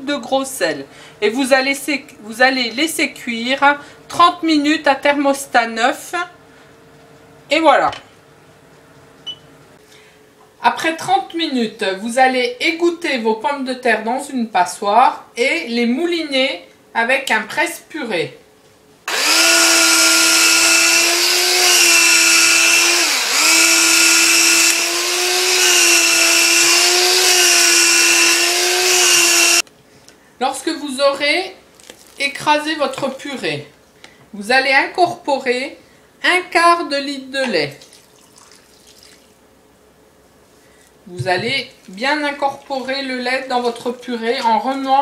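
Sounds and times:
electric hand blender whining: 0:19.1 - 0:29.6.

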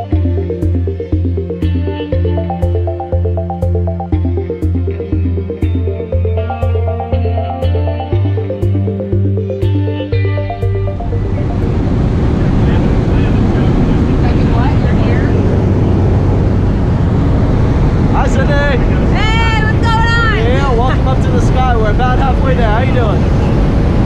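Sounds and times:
aircraft engine drone: 0:00.0 - 0:24.0
low hum: 0:00.0 - 0:24.0
rushing air: 0:10.5 - 0:19.8.

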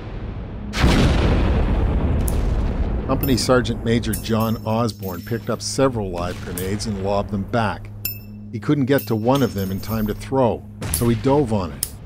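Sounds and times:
mortar firing blast: 0:00.0 - 0:08.1, 0:09.2 - 0:12.0
low music drone: 0:03.1 - 0:12.0.

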